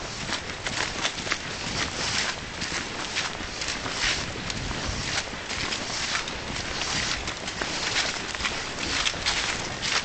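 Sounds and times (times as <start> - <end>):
footsteps crunching dry leaves: 0.0 - 10.0
wind on microphone: 0.0 - 10.0.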